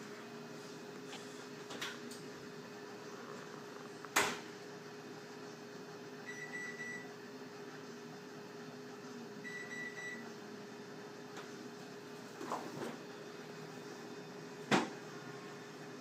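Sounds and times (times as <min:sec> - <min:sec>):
steady hum: 0:00.0 - 0:16.0
microwave oven beeping: 0:03.7 - 0:16.0.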